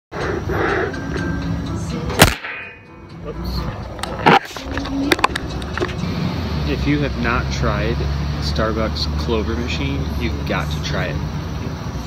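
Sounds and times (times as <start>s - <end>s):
outdoor background noise: 0.1s - 12.0s.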